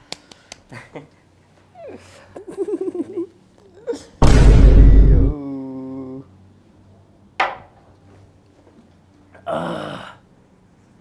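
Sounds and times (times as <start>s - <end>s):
hand claps: 0.0s - 0.8s.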